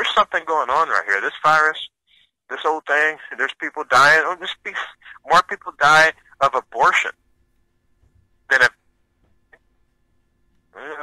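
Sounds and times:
man speaking: 2.5 - 7.2, 8.5 - 8.8, 10.8 - 11.0.

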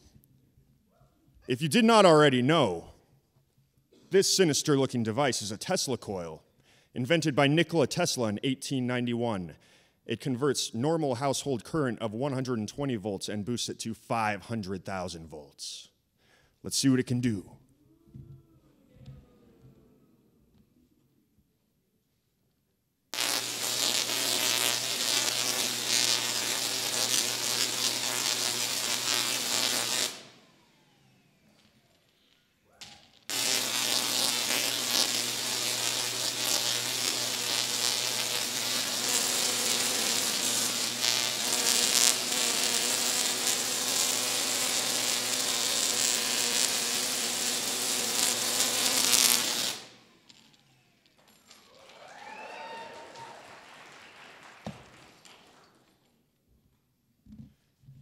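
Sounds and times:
tesla coil buzzing crackle: 23.2 - 30.4, 32.8 - 50.0.

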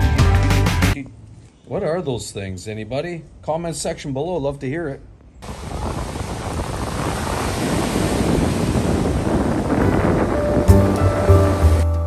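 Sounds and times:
ocean surf on beach: 5.4 - 12.0
piano music with deep bass: 9.8 - 12.0.

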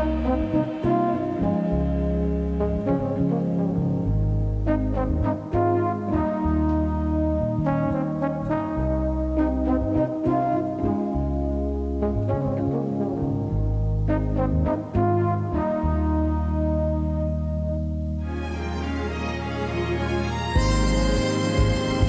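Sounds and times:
slow orchestral film music: 0.0 - 22.0.

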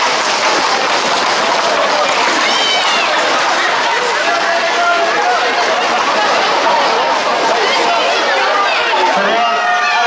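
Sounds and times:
horse hooves clattering on tarmac: 0.0 - 5.8
people running footsteps: 0.0 - 10.0.

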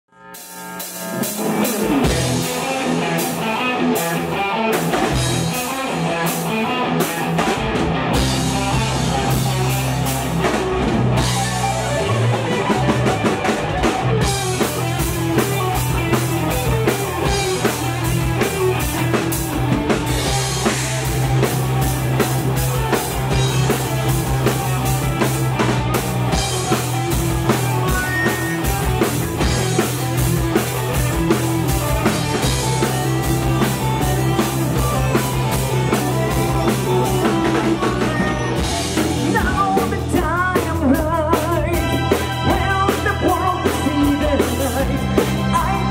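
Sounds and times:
metal band playing live: 0.2 - 45.9.

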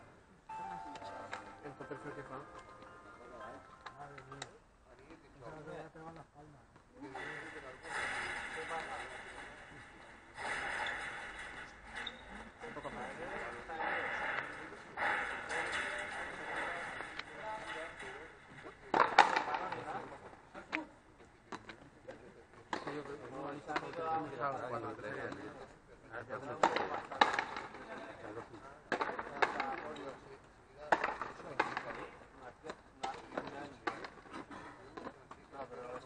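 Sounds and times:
indistinct voices talking: 0.5 - 4.5.

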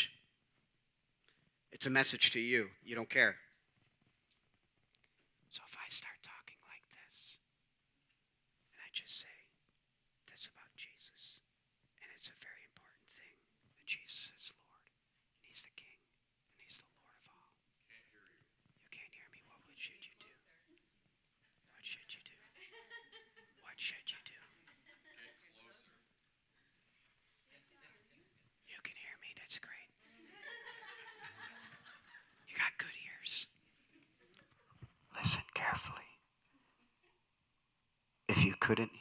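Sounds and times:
faint whispering: 0.0 - 0.2, 5.5 - 7.5, 8.6 - 22.8, 23.5 - 30.1, 32.4 - 37.2, 38.3 - 39.0.

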